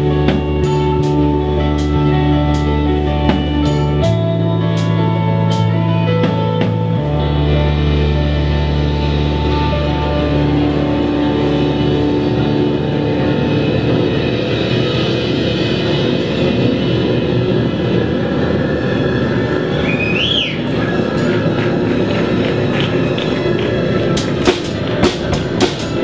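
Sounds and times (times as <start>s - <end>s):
drums: 0.0s - 26.0s
electric guitar: 0.0s - 26.0s
synthesizer: 0.0s - 26.0s.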